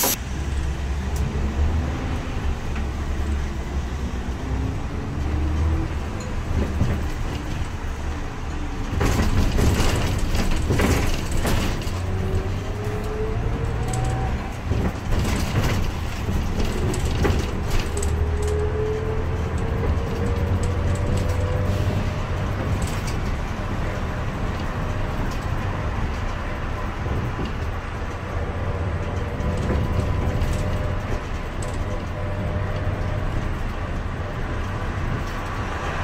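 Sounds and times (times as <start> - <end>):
bus engine rumble: 0.0 - 36.0.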